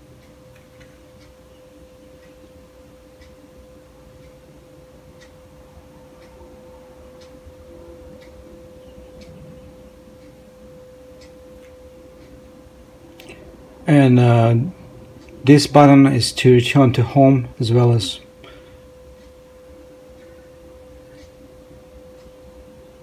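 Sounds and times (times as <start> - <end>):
steady low hum: 0.0 - 23.0
faint regular ticks: 0.1 - 13.6, 17.8 - 23.0.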